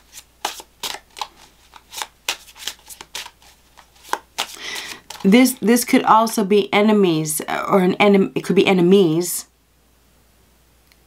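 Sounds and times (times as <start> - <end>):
cards being shuffled: 0.0 - 5.7.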